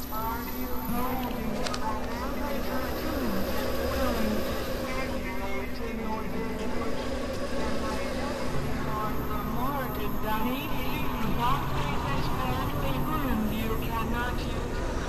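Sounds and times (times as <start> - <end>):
dense electronic buzzing: 0.0 - 15.0
low synthesizer drone: 0.0 - 15.0.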